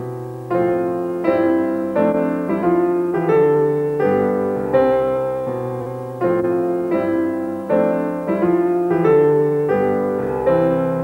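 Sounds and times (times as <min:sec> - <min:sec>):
solo piano chords: 0:00.0 - 0:11.0.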